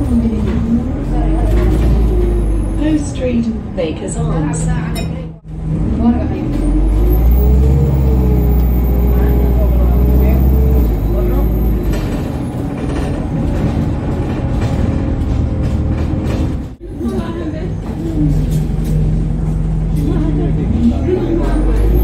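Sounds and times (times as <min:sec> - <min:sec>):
bus engine at high revs: 0:00.0 - 0:03.6, 0:05.4 - 0:16.8, 0:17.6 - 0:22.0
deep rumble: 0:00.0 - 0:22.0.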